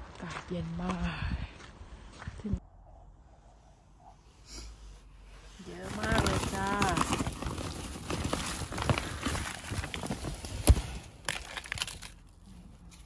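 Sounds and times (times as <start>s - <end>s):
bag crinkling: 5.6s - 13.0s.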